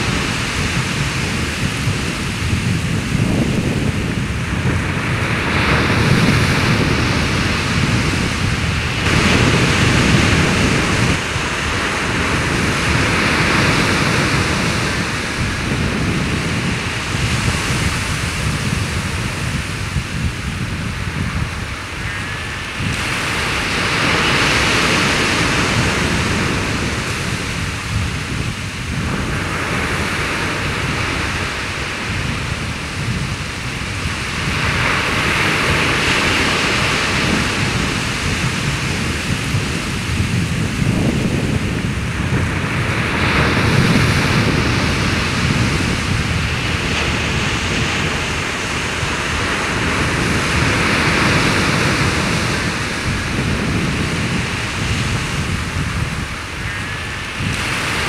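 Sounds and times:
surf breaking on beach: 0:00.0 - 0:58.0
wind rumble on microphone: 0:00.0 - 0:58.0.

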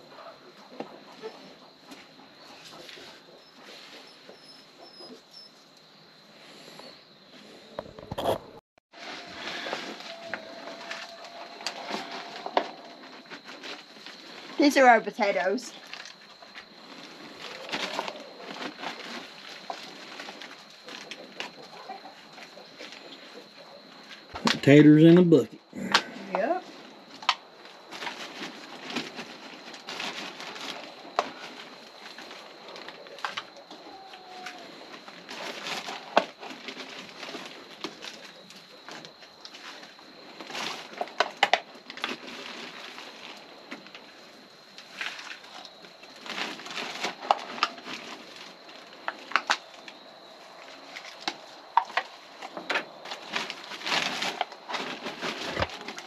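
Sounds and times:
rustling and crinkling plastic: 0:08.9 - 0:24.8, 0:26.4 - 0:56.0.

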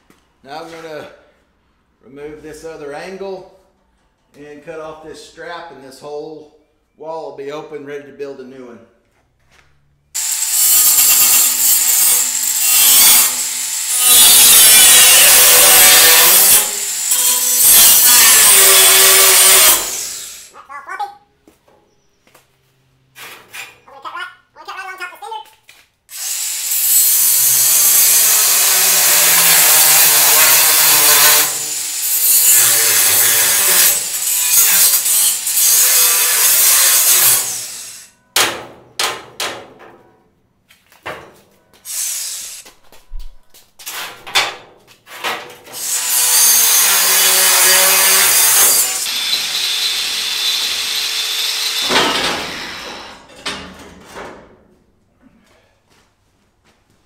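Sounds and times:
angle grinder cutting steel: 0:10.2 - 0:20.6, 0:26.1 - 0:38.1, 0:41.9 - 0:42.7, 0:45.8 - 0:53.4.

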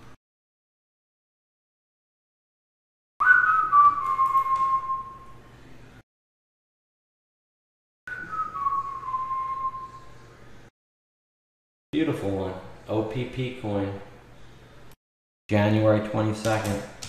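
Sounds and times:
person whistling long notes: 0:03.2 - 0:05.4, 0:08.1 - 0:10.2.

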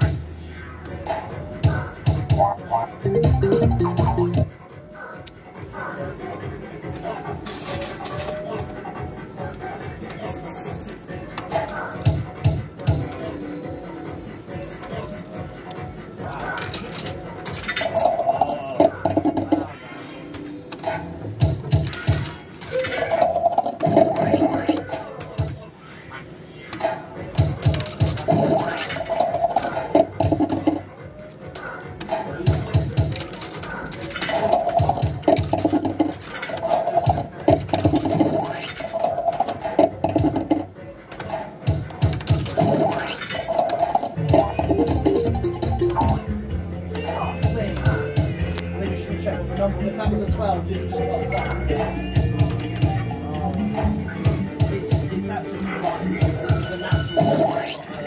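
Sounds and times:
slot machine electronic jingles: 0:03.0 - 0:04.5, 0:42.7 - 0:46.3.

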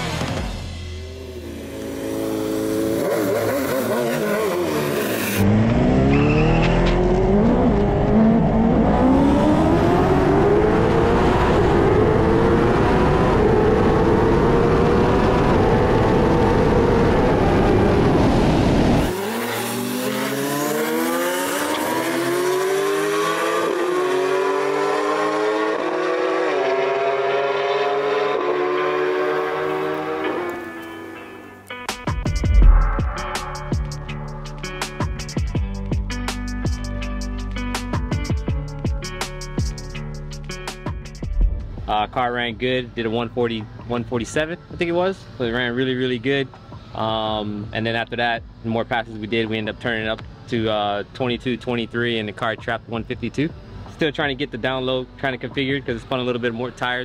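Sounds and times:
motorcycle accelerating through gears: 0:01.0 - 0:30.9.

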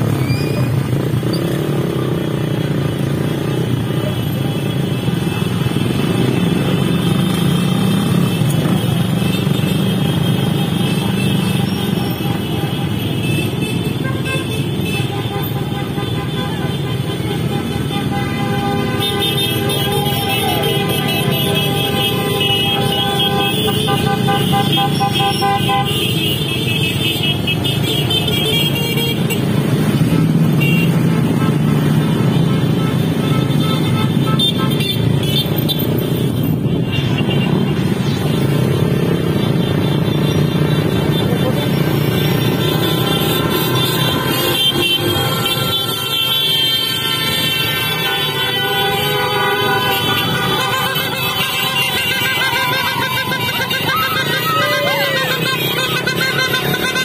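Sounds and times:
motorcycle engines rumbling: 0:00.0 - 0:57.0
motorcycle horns tooting: 0:00.6 - 0:57.0.

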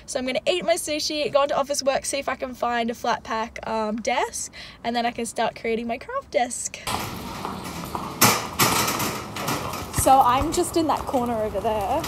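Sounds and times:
sharp knocks: 0:06.9 - 0:10.6
metal trolley rolling and rattling: 0:06.9 - 0:12.0.

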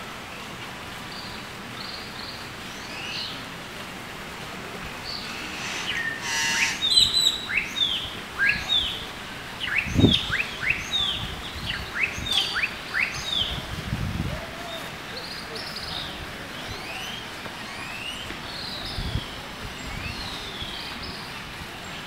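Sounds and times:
small birds chirping: 0:04.9 - 0:13.6, 0:14.8 - 0:22.0
harsh bird call: 0:05.0 - 0:09.0.

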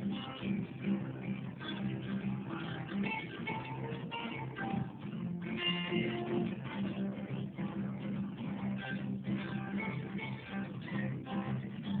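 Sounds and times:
guitar strumming country chords: 0:00.0 - 0:12.0.

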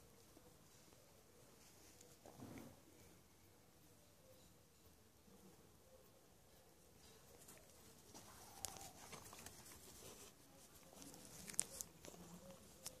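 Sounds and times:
light rustling: 0:06.9 - 0:13.0.

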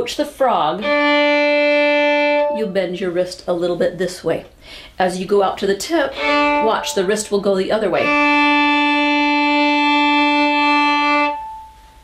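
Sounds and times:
violin long bowed note: 0:00.8 - 0:02.8, 0:06.1 - 0:07.2, 0:07.9 - 0:12.0.

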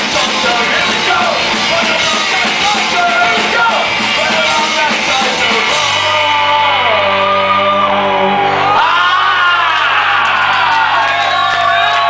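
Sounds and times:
high sliding guitar line: 0:00.0 - 0:11.8
punk band playing live: 0:00.0 - 0:12.0
shouted singing: 0:00.0 - 0:12.0.

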